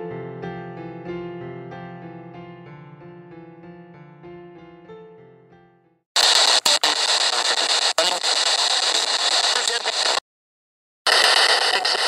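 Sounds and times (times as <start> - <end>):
radio static hissing: 6.2 - 10.2, 11.1 - 12.0.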